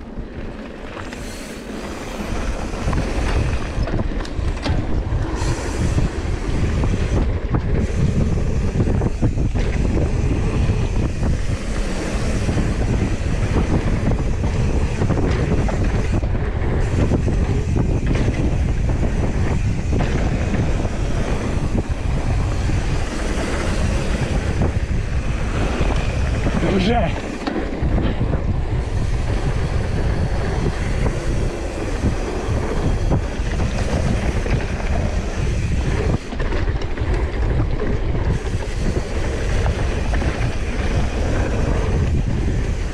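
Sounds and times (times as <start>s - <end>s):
mountain bike rumble and rattle: 0.0s - 42.9s
wind buffeting microphone: 0.0s - 42.9s.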